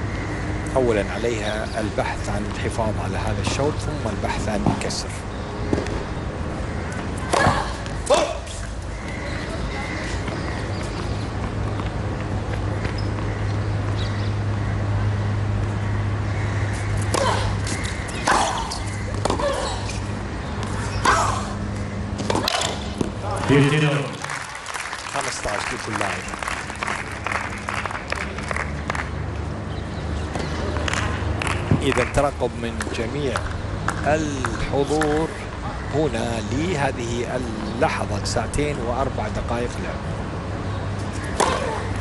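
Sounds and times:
tennis ball bouncing and struck: 0:41.1 - 0:42.0.

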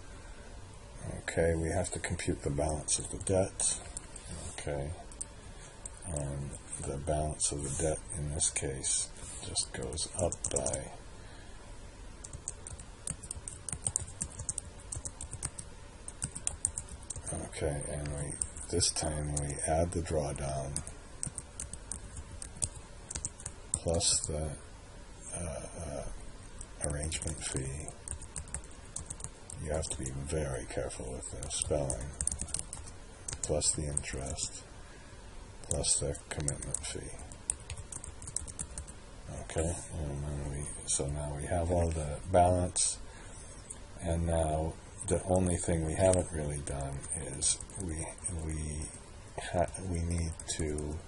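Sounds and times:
computer keyboard typing: 0:10.2 - 0:10.8, 0:12.2 - 0:17.3, 0:20.7 - 0:23.9, 0:27.1 - 0:30.0, 0:31.4 - 0:34.4, 0:36.4 - 0:39.0.

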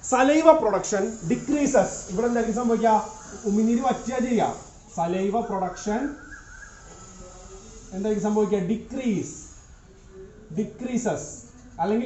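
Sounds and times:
man speaking: 0:00.0 - 0:06.2, 0:07.2 - 0:09.6, 0:10.4 - 0:12.0.

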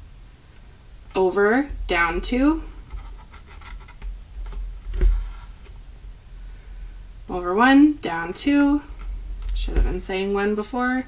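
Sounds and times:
scratchy paper rustle: 0:02.9 - 0:04.0, 0:04.9 - 0:05.7.

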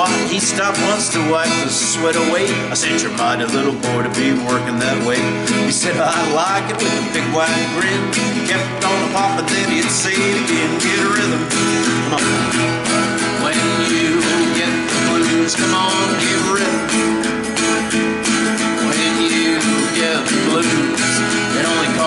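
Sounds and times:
acoustic guitar strumming: 0:00.0 - 0:22.0
harmonica playing: 0:08.2 - 0:22.0.

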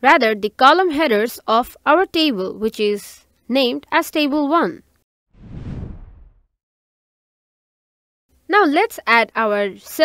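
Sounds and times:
whoosh transition: 0:05.4 - 0:06.5.

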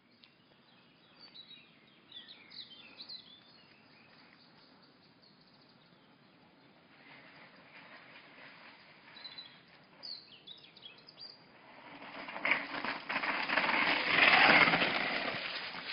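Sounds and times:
bird chirps: 0:00.0 - 0:06.8, 0:09.1 - 0:11.4
mountain bike tyres on loose soil: 0:00.5 - 0:15.9.

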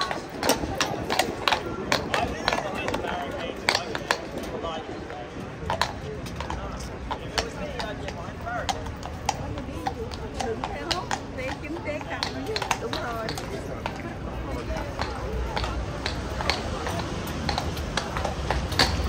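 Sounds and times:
crowd chatter: 0:00.0 - 0:19.0
horse hooves clopping on paving: 0:00.0 - 0:19.0.

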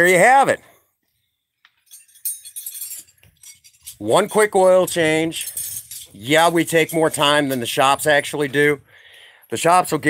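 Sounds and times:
light metallic clinking: 0:01.6 - 0:07.9.

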